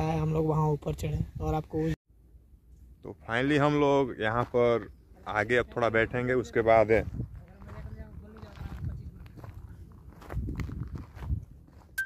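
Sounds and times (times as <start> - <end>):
footsteps on stony ground: 4.2 - 12.0.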